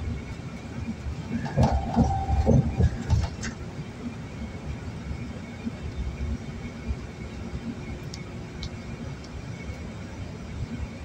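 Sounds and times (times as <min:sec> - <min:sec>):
car road noise: 0:00.0 - 0:11.0.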